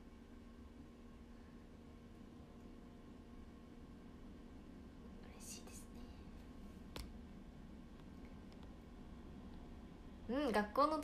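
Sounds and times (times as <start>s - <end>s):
faint room hum: 0.0s - 11.0s
woman whispering: 5.2s - 6.1s.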